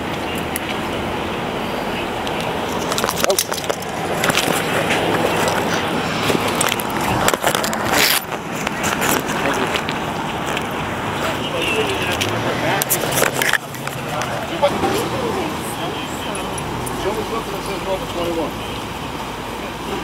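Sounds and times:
street background: 0.0s - 20.0s
camera handling noise: 2.3s - 10.7s.

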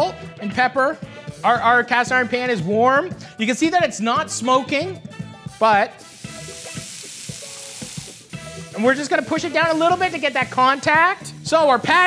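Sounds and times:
burger patties sizzling in a pan: 6.0s - 11.4s.

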